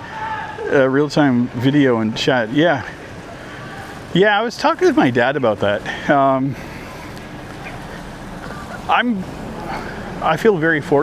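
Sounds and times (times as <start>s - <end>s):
road traffic rushing hiss: 0.0s - 11.0s.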